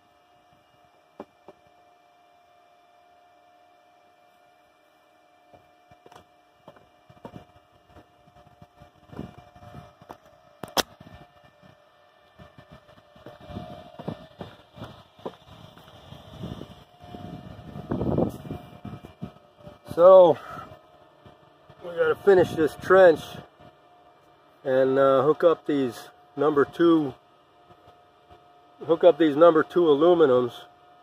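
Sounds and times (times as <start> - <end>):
faint steady whine: 0.0 - 31.0.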